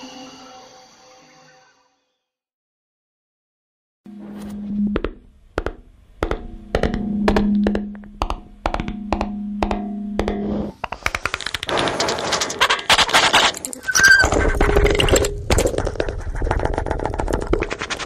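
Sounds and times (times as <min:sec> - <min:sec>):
steady low hum: 0:04.1 - 0:11.2
rapid crackling rattle: 0:11.0 - 0:18.0.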